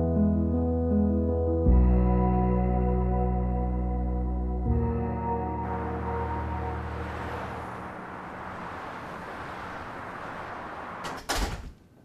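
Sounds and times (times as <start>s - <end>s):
soft music: 0.0s - 9.1s
door opening and shutting: 10.8s - 12.0s.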